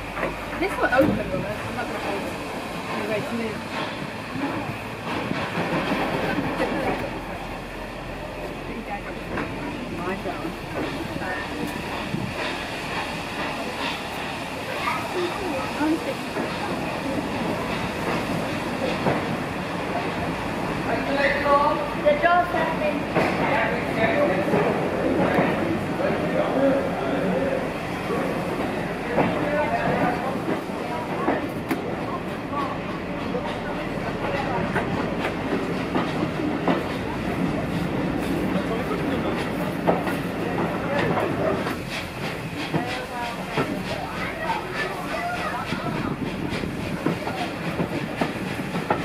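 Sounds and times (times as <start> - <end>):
railway coach rumbling on track: 0.0 - 49.0
wheels clicking over rail joints: 28.2 - 49.0.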